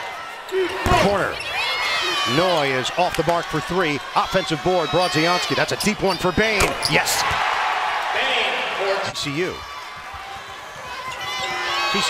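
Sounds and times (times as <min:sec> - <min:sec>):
sneaker squeaks: 0:09.6 - 0:12.0.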